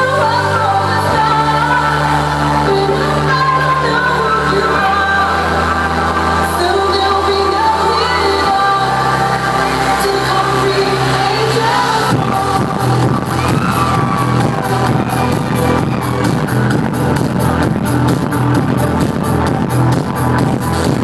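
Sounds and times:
loud trance music: 0:00.0 - 0:21.0.

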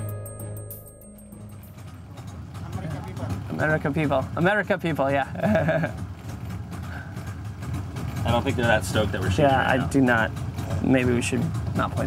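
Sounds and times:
background music: 0:00.0 - 0:02.3.

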